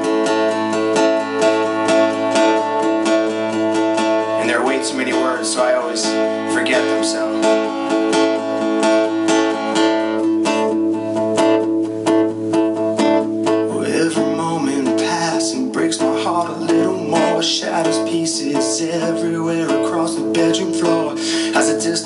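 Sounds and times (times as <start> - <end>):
acoustic guitar strumming: 0.0 - 22.0
man singing: 4.3 - 7.8, 13.7 - 22.0.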